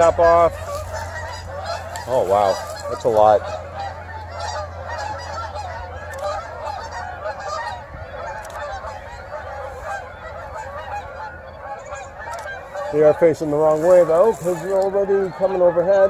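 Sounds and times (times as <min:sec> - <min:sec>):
geese honking in flight: 0:00.0 - 0:16.0.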